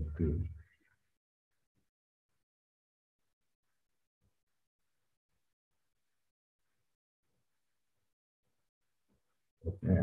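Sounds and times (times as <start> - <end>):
man speaking: 0.0 - 0.6, 9.7 - 10.0.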